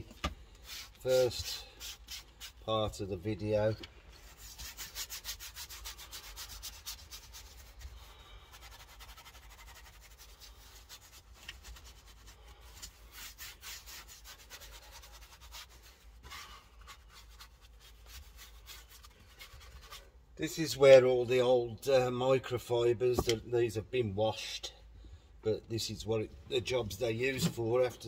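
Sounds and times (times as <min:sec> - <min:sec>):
brush scrubbing plastic: 0:00.6 - 0:02.8, 0:04.1 - 0:20.1.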